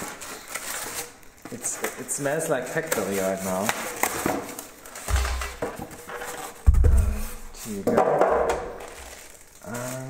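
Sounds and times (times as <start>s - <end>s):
polystyrene foam rubbing: 0.0s - 7.8s, 8.8s - 10.0s.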